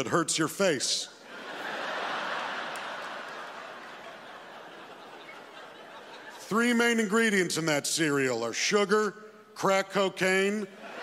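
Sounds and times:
large audience laughing: 1.2s - 6.8s, 10.7s - 11.0s.

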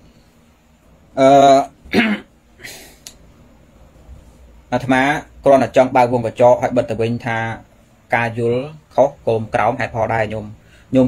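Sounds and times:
man clearing his throat: 1.8s - 2.9s
man coughing: 1.8s - 2.9s.

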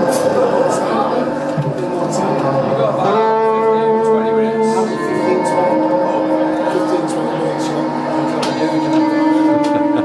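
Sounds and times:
live rock band playing: 3.0s - 10.0s.

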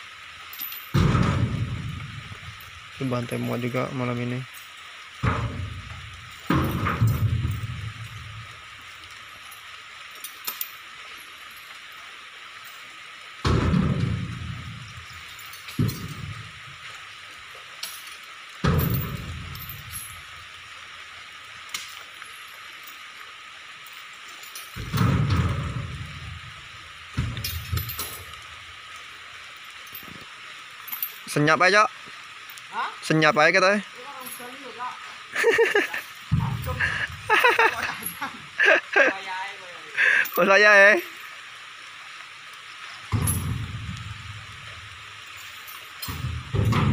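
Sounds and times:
heavy rain: 0.0s - 46.9s
heavy thuds with ringing tail: 0.9s - 2.7s, 5.2s - 8.5s, 13.4s - 15.1s, 18.6s - 20.2s, 24.8s - 28.4s, 43.1s - 44.5s, 46.0s - 46.9s.

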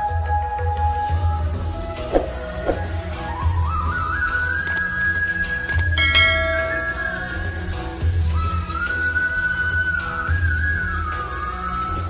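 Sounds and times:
flute-like melody: 0.4s - 7.6s
bell-like ding: 5.7s - 7.6s.

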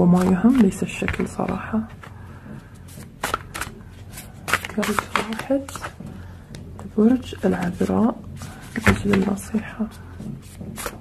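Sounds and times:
cards clicking and snapping: 3.2s - 5.9s.

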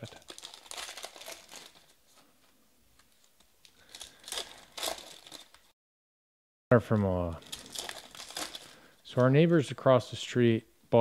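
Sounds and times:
foil pack tearing open: 0.0s - 2.0s, 3.8s - 5.6s, 7.4s - 8.9s
foil wrapper crinkling: 0.0s - 2.2s, 3.0s - 5.7s, 7.4s - 9.4s.

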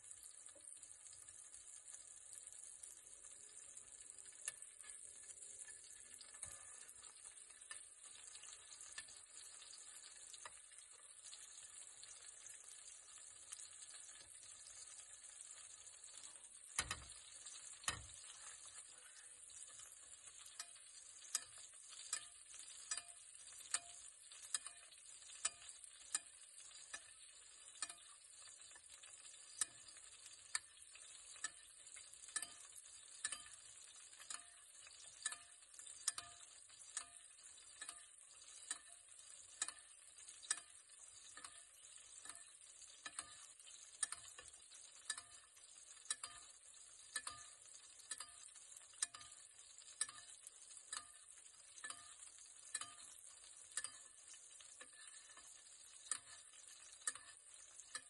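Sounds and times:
butter sizzling in a pan: 0.0s - 58.0s
metal spoon clinking on pan: 4.1s - 12.3s, 13.5s - 58.0s.

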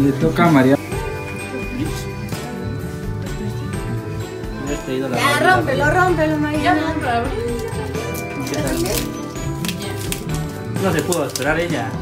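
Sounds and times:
background music: 0.0s - 12.0s
wrapping paper tearing and crinkling: 7.6s - 11.9s.

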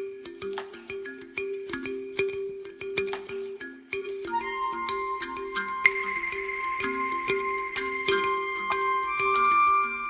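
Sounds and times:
ambient relaxation music: 0.0s - 10.0s.

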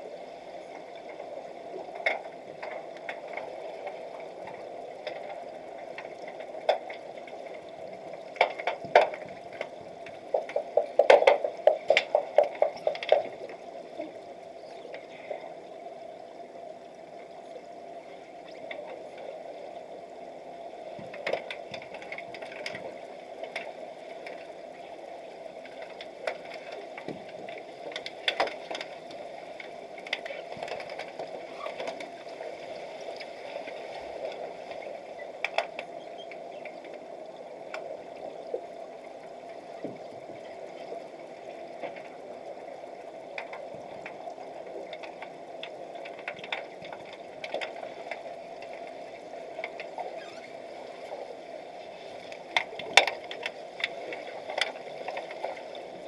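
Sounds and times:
sharp clicks and knocks: 8.4s - 13.4s.

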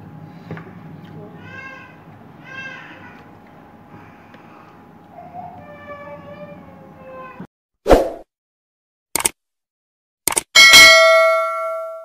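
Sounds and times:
notification bell ding: 10.6s - 12.0s.

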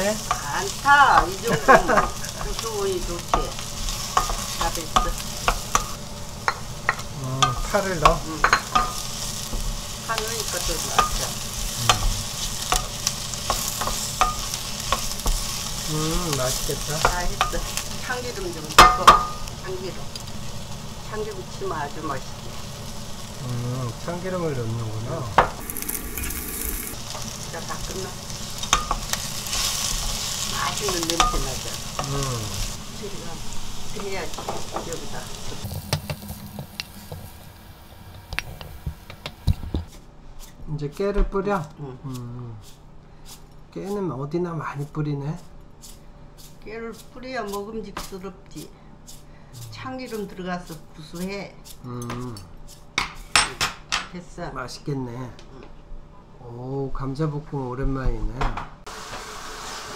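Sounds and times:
potatoes sizzling in oil: 0.0s - 39.6s, 44.7s - 52.9s, 58.9s - 59.9s
utensil clicking on pan: 28.6s - 30.2s.

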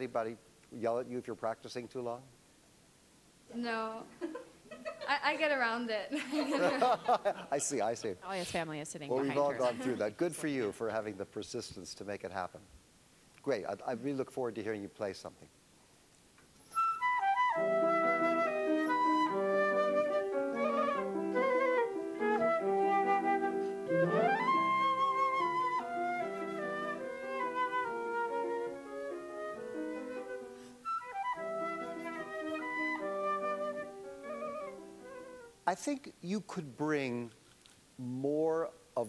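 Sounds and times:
flute playing classical melody: 16.7s - 35.6s.

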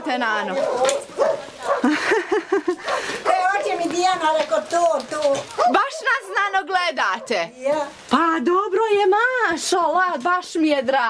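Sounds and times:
dog barking: 0.4s - 2.0s, 2.8s - 3.7s, 5.4s - 7.5s.

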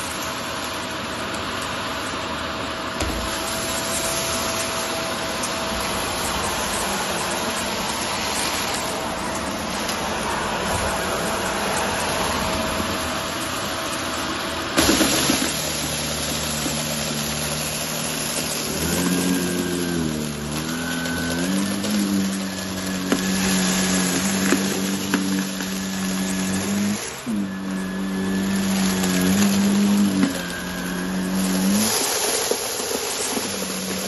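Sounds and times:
vacuum cleaner running over carpet: 0.0s - 34.0s
pebbles sucked into vacuum: 14.8s - 34.0s.

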